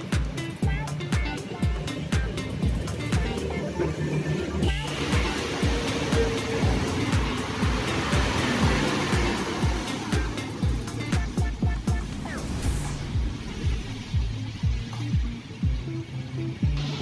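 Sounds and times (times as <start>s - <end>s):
background music with beat: 0.0s - 17.0s
fogging machine hissing: 0.0s - 17.0s.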